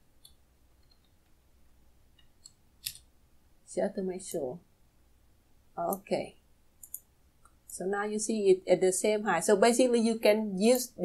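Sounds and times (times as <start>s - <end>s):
computer keys clicking: 6.8s - 7.6s.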